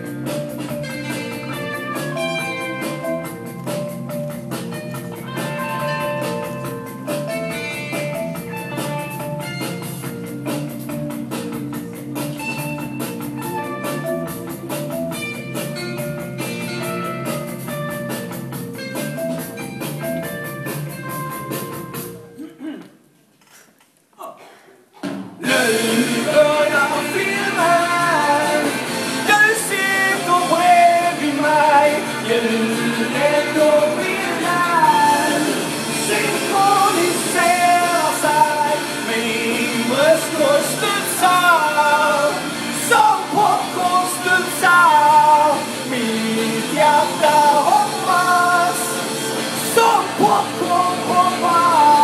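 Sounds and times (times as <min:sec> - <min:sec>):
live rock band playing: 0:00.0 - 0:22.3, 0:25.4 - 0:52.0
man singing: 0:25.4 - 0:52.0.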